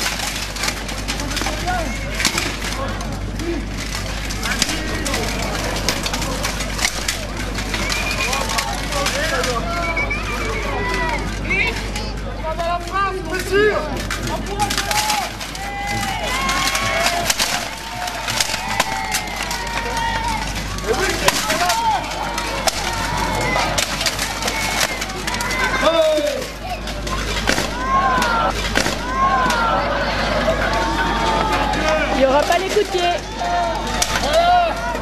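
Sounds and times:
crowd talking and calling out: 0.0s - 35.0s.

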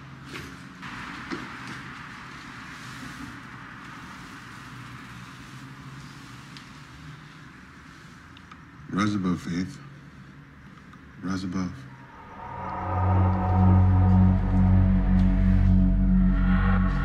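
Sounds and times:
distant traffic hum: 0.0s - 17.0s
hiss: 0.8s - 8.4s.

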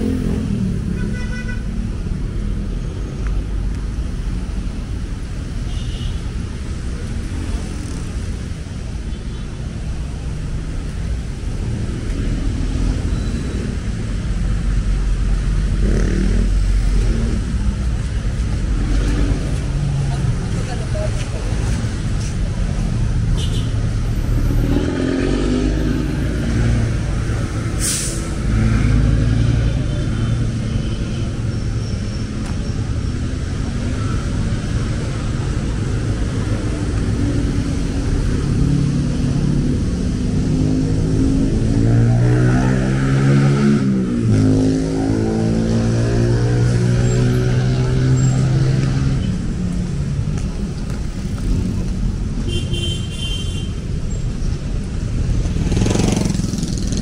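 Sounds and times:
road traffic: 0.0s - 57.0s.

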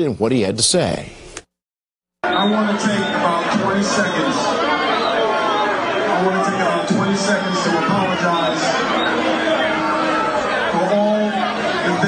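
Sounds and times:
man speaking over loudspeakers: 2.2s - 4.6s, 5.6s - 9.7s, 10.6s - 12.0s
crowd chatter: 2.2s - 12.0s.

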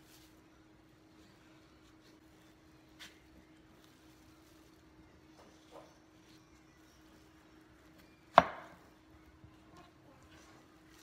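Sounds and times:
knife chopping on cutting board: 8.3s - 8.8s.

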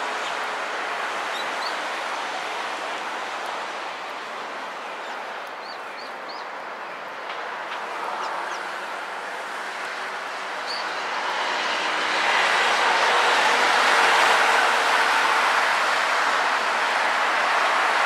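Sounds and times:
broad rushing noise: 0.0s - 18.0s.

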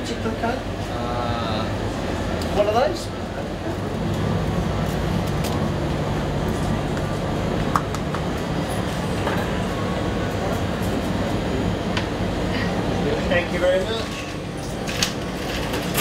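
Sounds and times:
shop machinery humming: 0.0s - 16.0s.

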